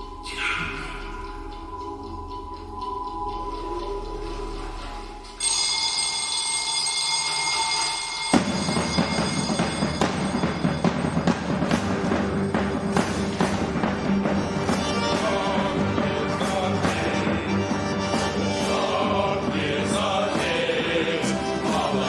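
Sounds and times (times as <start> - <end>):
music with sharp percussive beats: 0.0 - 6.1, 7.4 - 22.0
high bell-like ringing tone: 0.7 - 11.7.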